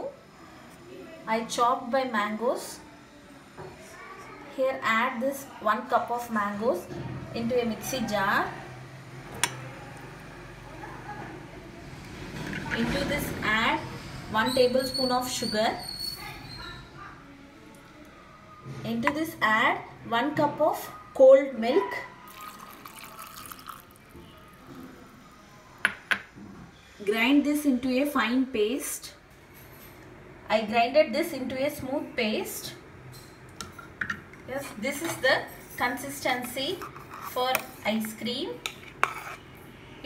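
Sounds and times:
milk pouring into steel jar: 22.3s - 24.8s.

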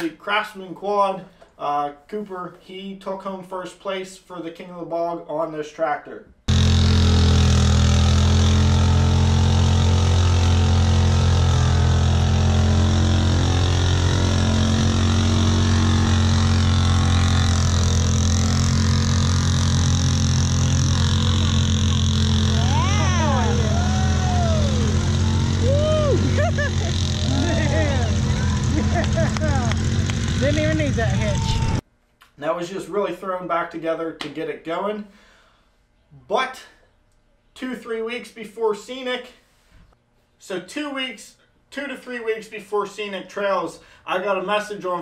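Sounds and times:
engine running loud at high speed: 6.5s - 31.8s
voices calling out: 22.4s - 31.8s.

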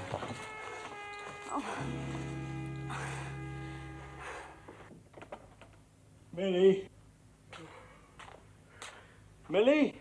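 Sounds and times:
background music sustained chord: 0.0s - 4.9s.

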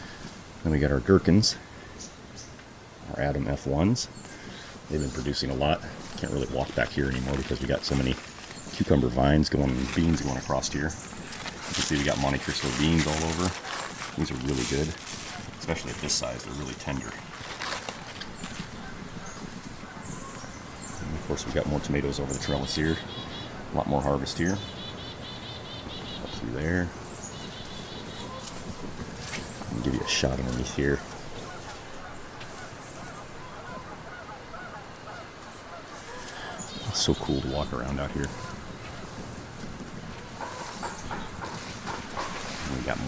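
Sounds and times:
outdoor garden background: 0.0s - 43.0s
distant animal calls: 4.1s - 43.0s
faint bird chirps: 18.0s - 39.1s.

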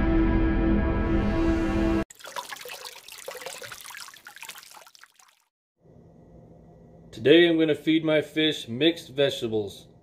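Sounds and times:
small water splashes: 2.1s - 5.5s
water bubbling and trickling: 2.1s - 5.5s.

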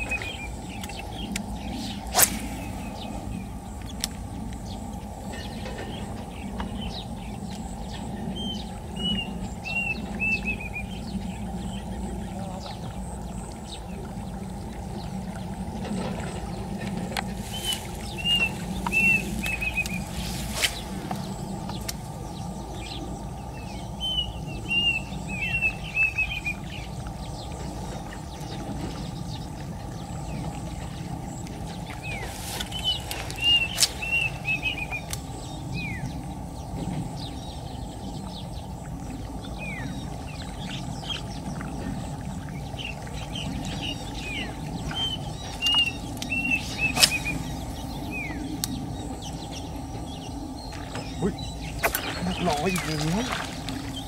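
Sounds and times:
birds chirping: 0.0s - 54.0s
outdoor background noise: 0.0s - 54.0s.

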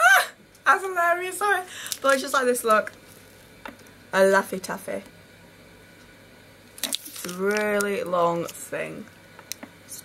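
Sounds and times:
speech: 0.7s - 2.9s, 4.2s - 5.1s, 7.2s - 9.1s.

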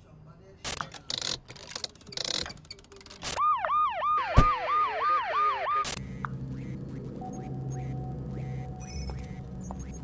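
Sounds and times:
electronic siren-like wail: 3.4s - 10.0s.

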